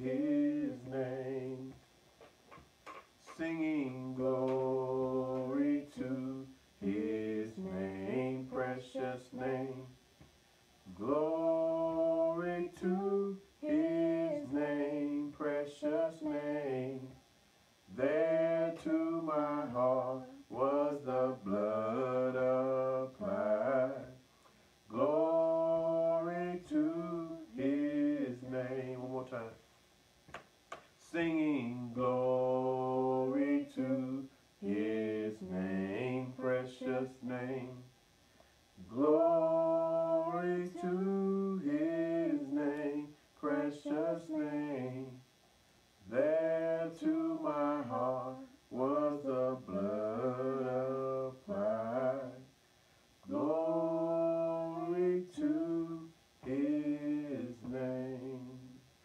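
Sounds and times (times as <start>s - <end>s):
man singing a hymn unaccompanied: 0.0s - 1.9s, 2.9s - 10.1s, 10.8s - 29.7s, 31.0s - 38.0s, 38.7s - 59.0s.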